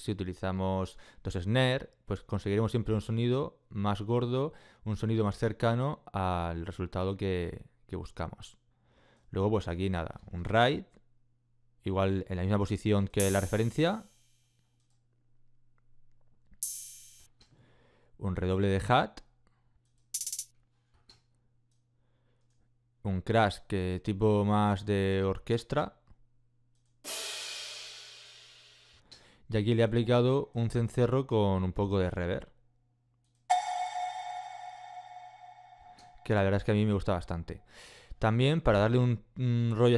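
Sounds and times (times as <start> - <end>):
ride cymbal hit: 13.2 - 14.1, 33.5 - 36.4.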